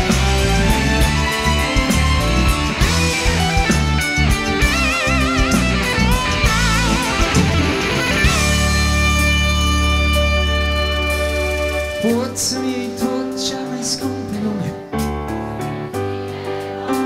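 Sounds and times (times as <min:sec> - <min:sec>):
electric guitar lead with vibrato: 0:00.0 - 0:12.8
live rock band playing: 0:00.0 - 0:17.0.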